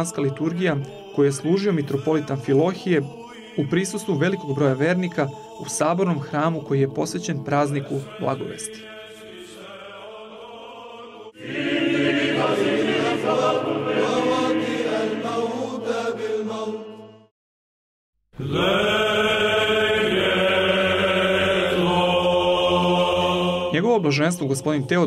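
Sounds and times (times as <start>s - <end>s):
chanted vocal music: 0.0s - 17.3s, 18.4s - 25.0s.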